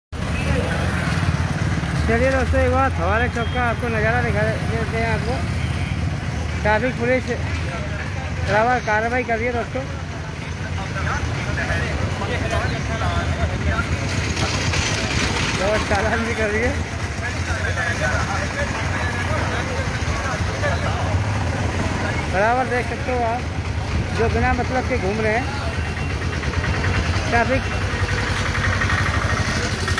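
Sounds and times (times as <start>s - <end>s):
road noise: 0.1s - 29.9s
indistinct voices talking: 0.2s - 29.9s
motorcycle engines rumbling: 0.2s - 29.9s.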